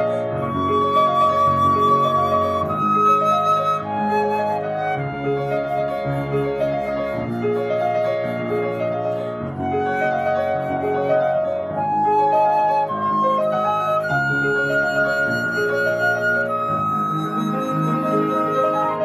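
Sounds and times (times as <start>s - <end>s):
cascading piano figures: 0.0s - 19.0s
flute melody: 0.0s - 19.0s.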